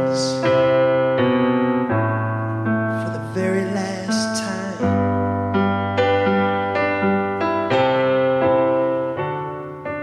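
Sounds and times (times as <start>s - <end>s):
electric piano chords: 0.0s - 10.0s.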